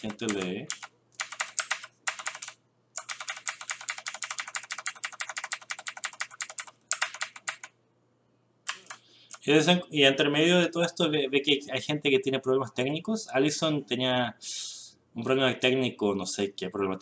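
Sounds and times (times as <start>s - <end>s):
typing on computer keyboard: 0.0s - 7.7s, 8.7s - 9.4s.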